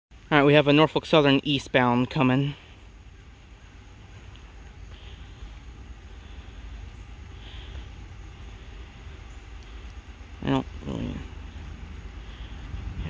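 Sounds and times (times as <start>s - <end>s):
distant freight train rumble: 0.2s - 13.0s.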